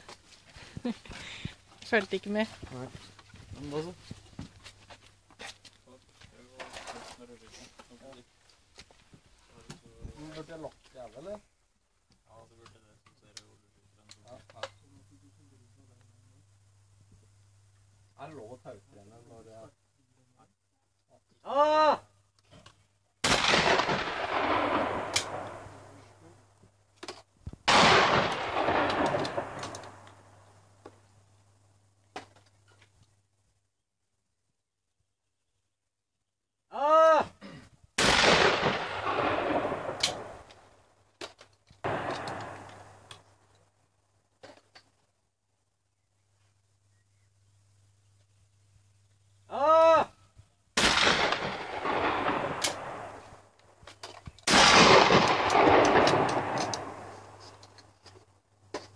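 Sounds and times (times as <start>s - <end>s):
person shouting: 21.4s - 22.1s, 36.7s - 37.4s, 49.5s - 50.2s
shotgun shots with echo: 23.2s - 25.7s, 27.7s - 30.0s, 38.0s - 40.3s, 41.9s - 42.9s, 50.8s - 53.2s, 54.5s - 57.1s.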